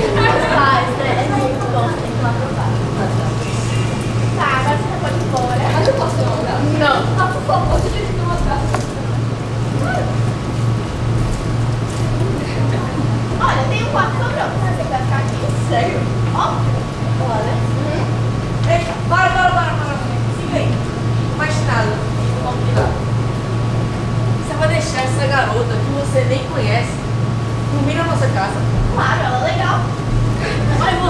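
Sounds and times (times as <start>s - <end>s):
distant indistinct voices: 0.0s - 31.0s
steady low hum: 0.0s - 31.0s.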